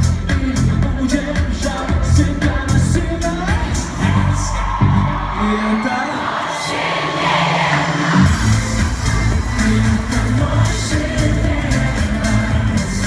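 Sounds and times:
live pop concert music: 0:00.0 - 0:13.0
crowd cheering: 0:03.5 - 0:12.6.

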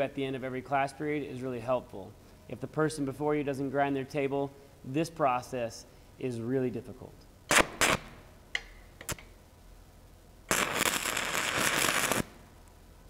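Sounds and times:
welding arc crackling: 0:07.5 - 0:08.2, 0:10.5 - 0:12.5.

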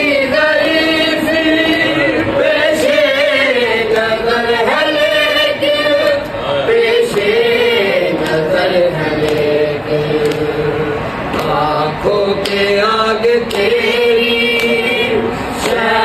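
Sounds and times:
group chanting a lament: 0:00.0 - 0:16.0.

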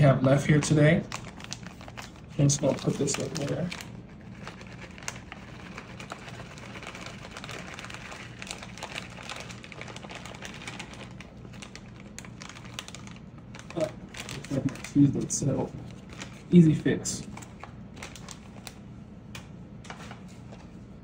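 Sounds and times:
low steady hum: 0:00.0 - 0:21.0
plastic bag crinkling: 0:00.2 - 0:18.9.

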